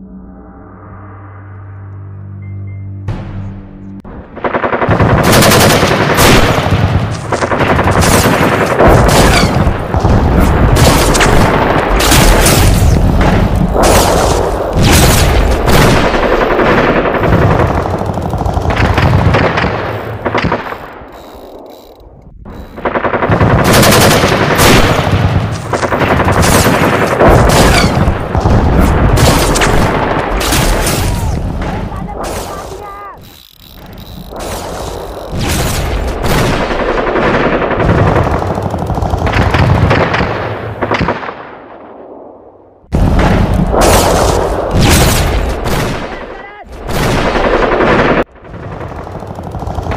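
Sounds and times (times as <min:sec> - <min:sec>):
rapid machine-gun fire: 0:04.4 - 0:20.9, 0:22.6 - 0:32.8, 0:34.3 - 0:41.4, 0:42.9 - 0:49.9
single gunshots: 0:24.1 - 0:32.8.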